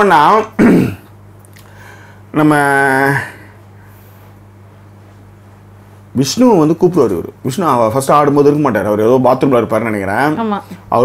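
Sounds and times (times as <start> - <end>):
faint steady hum: 0.0 - 11.0
throat clearing: 0.6 - 1.1
man speaking: 2.3 - 3.4, 6.2 - 11.0.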